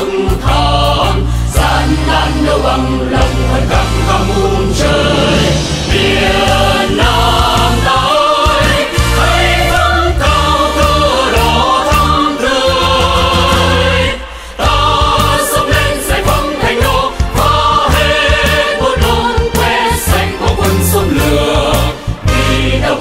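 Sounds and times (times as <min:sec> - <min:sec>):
chorus singing military march: 0:00.0 - 0:23.0
instrumental accompaniment: 0:00.0 - 0:23.0.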